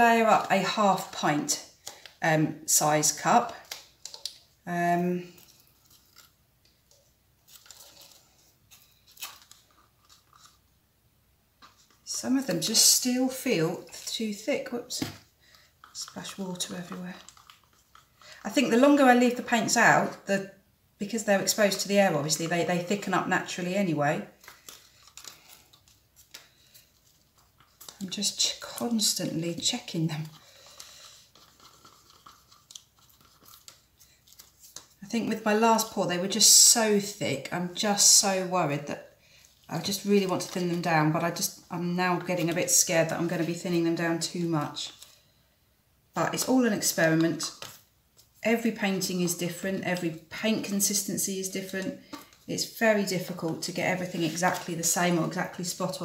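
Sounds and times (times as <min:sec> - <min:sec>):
stir stick scraping plastic cups: 0:00.1 - 0:10.7, 0:11.6 - 0:20.3, 0:21.1 - 0:37.2, 0:37.8 - 0:45.4, 0:46.2 - 0:56.0.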